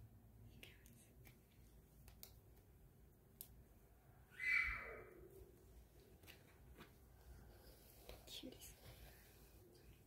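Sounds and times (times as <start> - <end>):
person whispering: 0.4 - 1.3, 8.1 - 9.4.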